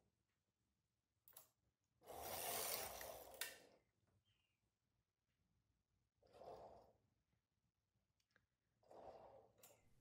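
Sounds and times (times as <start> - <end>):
knitting machine carriage sliding: 2.0 - 3.7.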